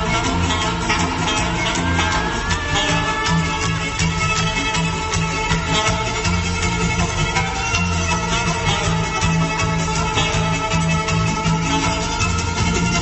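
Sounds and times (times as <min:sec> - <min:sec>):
drums: 0:00.0 - 0:13.0
electric guitar: 0:00.0 - 0:13.0
pulsing bass line: 0:00.0 - 0:13.0
violins leading: 0:00.0 - 0:13.0.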